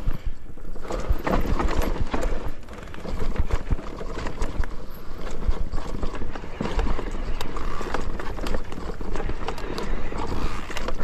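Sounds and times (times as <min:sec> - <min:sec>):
bike rattling over rough trail: 0:00.0 - 0:11.0.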